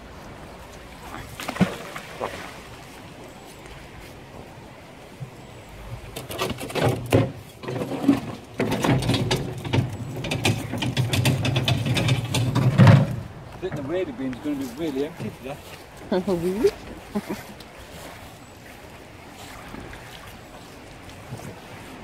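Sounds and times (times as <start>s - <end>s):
magnet splashing into water: 1.4s - 2.5s
rattling clicks and scrapes: 6.2s - 13.3s.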